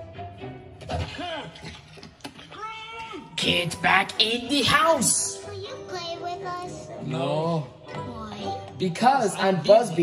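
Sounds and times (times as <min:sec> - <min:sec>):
film soundtrack music: 0:00.0 - 0:02.2, 0:03.3 - 0:10.0.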